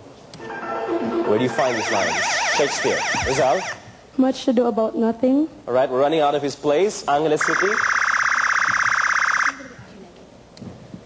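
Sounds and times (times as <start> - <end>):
electronic buzzer: 0.4 - 3.8, 7.4 - 9.8.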